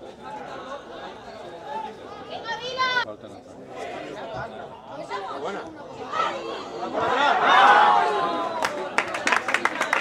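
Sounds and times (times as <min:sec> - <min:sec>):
voices chattering and shouting: 0:00.0 - 0:09.0.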